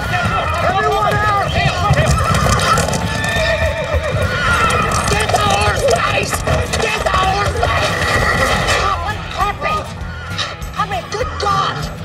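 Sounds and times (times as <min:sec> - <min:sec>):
heavy hoofbeats on dirt: 0:00.0 - 0:10.8
horses whinnying: 0:00.0 - 0:12.0
voices shouting: 0:00.0 - 0:12.0.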